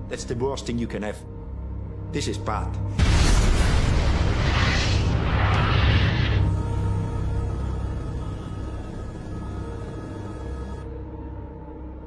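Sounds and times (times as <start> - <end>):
dark tense score music: 0.0 - 12.0
rushing rumble of flames: 3.0 - 6.5.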